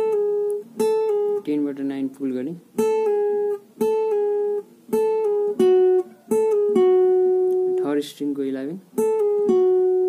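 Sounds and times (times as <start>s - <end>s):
acoustic guitar picking: 0.0s - 10.0s.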